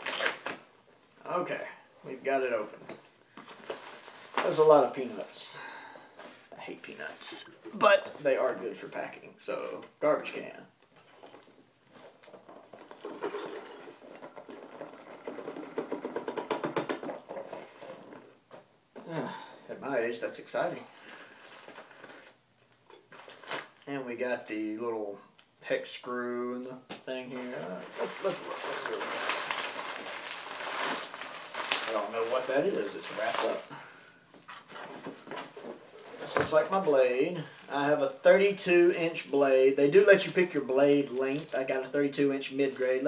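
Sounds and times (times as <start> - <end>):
man talking: 1.2 - 2.8, 4.4 - 5.7, 6.5 - 10.7, 19.0 - 20.9, 23.8 - 29.3, 31.9 - 33.8, 36.2 - 43.0
packing peanuts rustling: 27.3 - 33.8.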